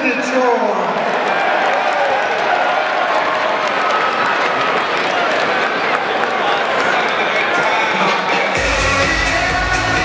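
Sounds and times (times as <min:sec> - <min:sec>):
crowd clapping and cheering: 0:00.0 - 0:10.0.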